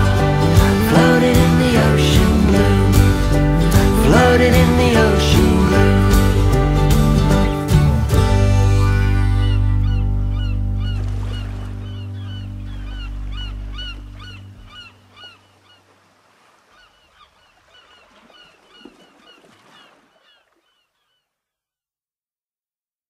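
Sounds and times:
birds calling: 0:08.8 - 0:21.4.

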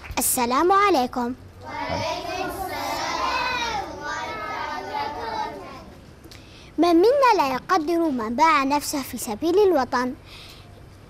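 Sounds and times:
children talking and calling out: 0:00.6 - 0:06.1, 0:06.8 - 0:10.2.

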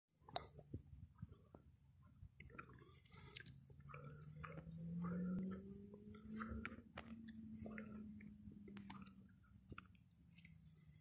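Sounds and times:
low steady hum: 0:00.2 - 0:11.0
soft crackles and clicks: 0:00.2 - 0:11.0.

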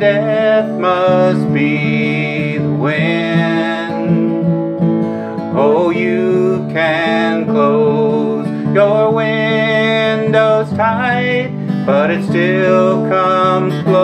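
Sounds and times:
acoustic guitar strumming: 0:00.0 - 0:14.0
man singing: 0:00.0 - 0:14.0.

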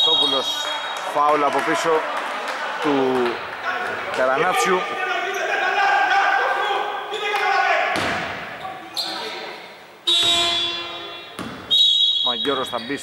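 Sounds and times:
voices on basketball court: 0:00.0 - 0:13.0
basketball bouncing: 0:07.9 - 0:08.5, 0:10.1 - 0:11.7
arena horn: 0:10.0 - 0:12.0.

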